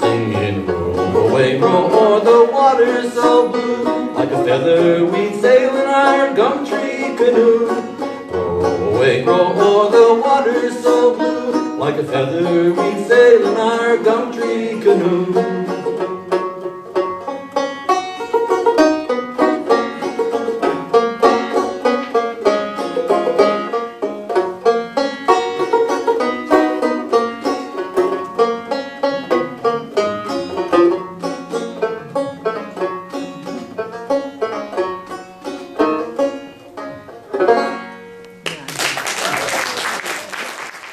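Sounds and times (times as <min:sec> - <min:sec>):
solo banjo playing: 0:00.0 - 0:38.4.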